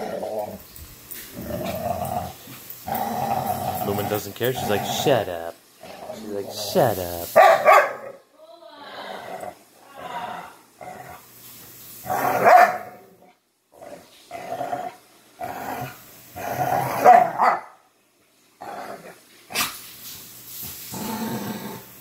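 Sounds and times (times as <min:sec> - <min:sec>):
dogs growling: 0:00.0 - 0:07.1, 0:09.0 - 0:11.3, 0:12.0 - 0:17.4, 0:18.6 - 0:19.8, 0:20.8 - 0:22.0
dogs barking: 0:07.4 - 0:08.2, 0:12.4 - 0:13.0, 0:17.0 - 0:17.8.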